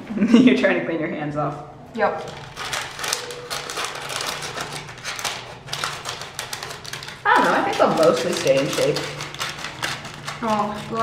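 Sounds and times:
parchment paper crinkling: 0:02.0 - 0:11.0.

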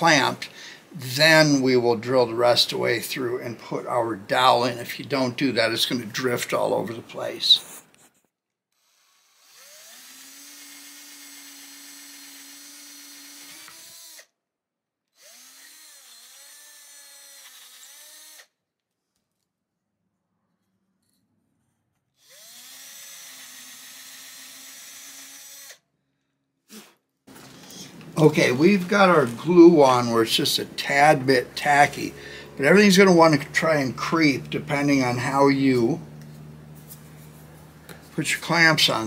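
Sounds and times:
cordless drill whining: 0:08.7 - 0:14.4, 0:15.1 - 0:18.6, 0:22.2 - 0:25.8.

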